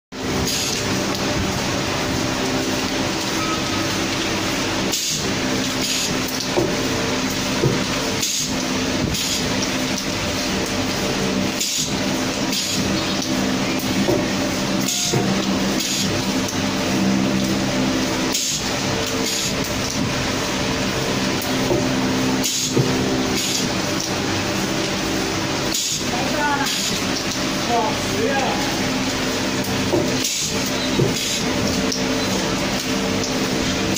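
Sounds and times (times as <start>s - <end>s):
machinery hum: 0.2s - 33.9s.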